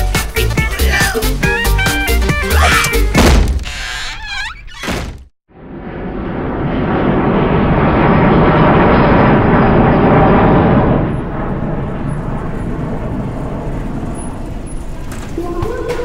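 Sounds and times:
jet airliner taking off: 0:05.6 - 0:15.1.

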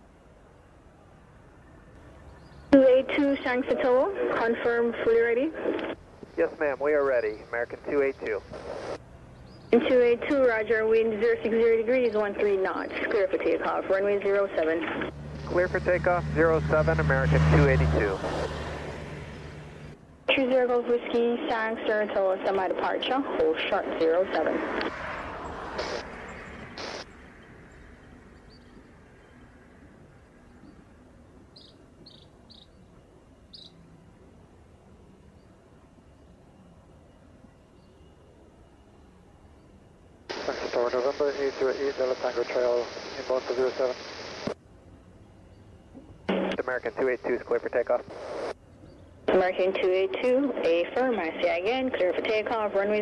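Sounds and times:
radio voices: 0:02.7 - 0:09.0, 0:09.7 - 0:18.5, 0:20.3 - 0:25.0, 0:25.6 - 0:27.1, 0:40.3 - 0:44.6, 0:46.3 - 0:48.6, 0:49.3 - 0:53.0.

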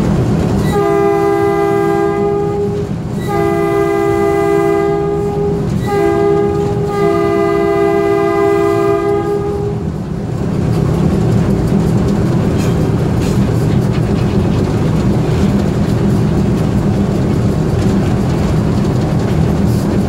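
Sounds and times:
locomotive engine rumble: 0:00.0 - 0:20.0
locomotive air horn blasts: 0:00.6 - 0:09.9.

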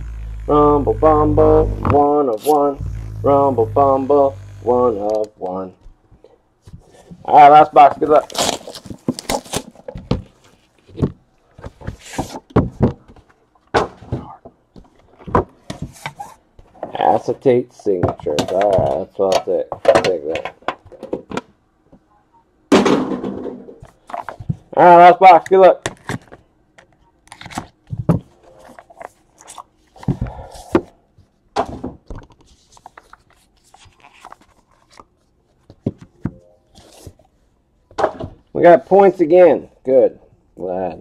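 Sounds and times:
cardboard scraping and rustling: 0:07.9 - 0:12.5.

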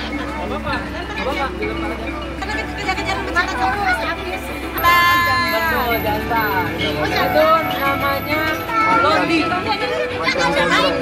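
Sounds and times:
people talking and calling: 0:00.0 - 0:11.0.

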